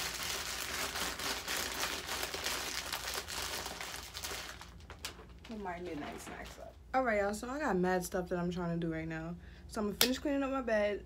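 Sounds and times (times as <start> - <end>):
packaging crinkling: 0.0 - 6.6.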